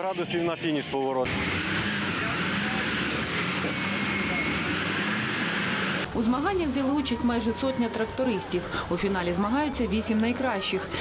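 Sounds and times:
tractor diesel engines under load: 0:01.3 - 0:10.1.

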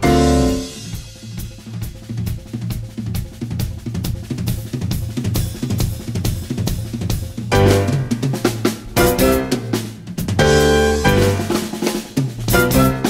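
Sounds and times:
bass line: 0:00.0 - 0:00.9, 0:07.5 - 0:11.7, 0:12.5 - 0:13.0
jazz band playing: 0:00.0 - 0:02.4, 0:04.6 - 0:13.0
jazz drum kit playing: 0:00.0 - 0:13.0.

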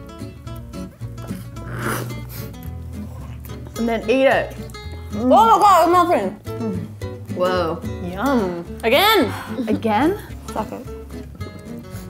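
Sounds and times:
acoustic guitar music: 0:00.0 - 0:12.0
slurping drink: 0:01.2 - 0:03.7.

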